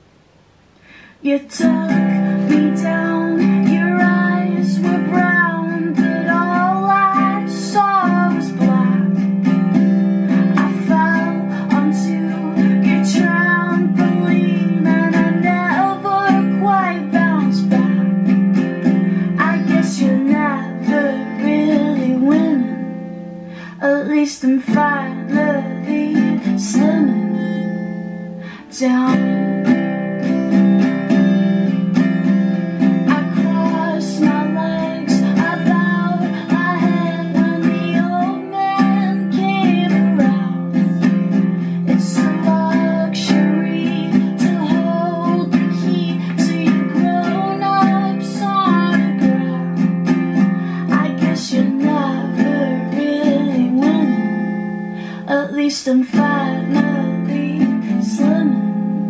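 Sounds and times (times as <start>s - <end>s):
acoustic guitar strumming: 0.0s - 59.0s
woman singing: 1.0s - 59.0s.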